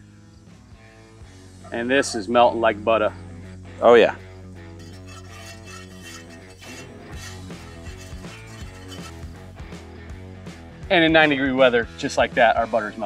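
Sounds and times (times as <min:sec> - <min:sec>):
metal whisk clinking in pot: 0:04.8 - 0:09.3.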